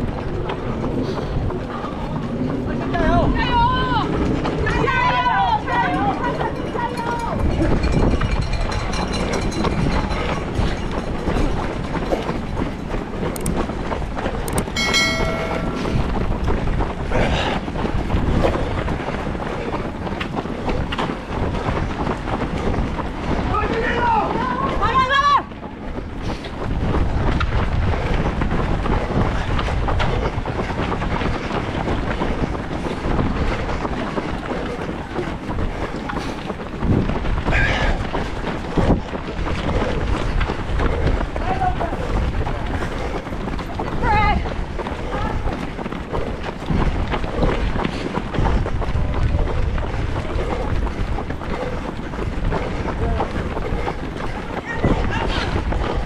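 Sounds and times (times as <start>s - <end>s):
runners' footfalls: 0.0s - 56.0s
wind rush on microphone: 0.0s - 56.0s
voices calling out: 32.4s - 56.0s.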